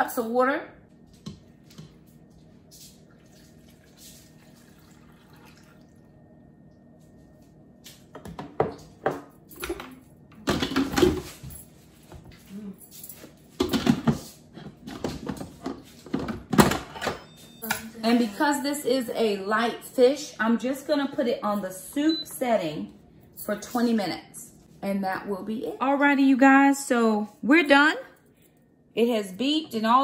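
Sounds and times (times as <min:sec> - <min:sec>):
water pouring into a pot: 0:03.1 - 0:06.1.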